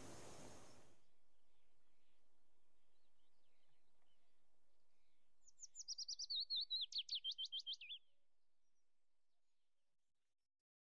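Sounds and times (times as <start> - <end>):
bird chirping: 0.0 - 8.9.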